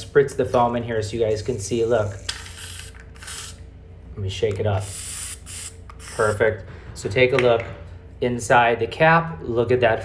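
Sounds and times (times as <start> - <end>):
foam dispenser hissing: 4.8 - 6.4.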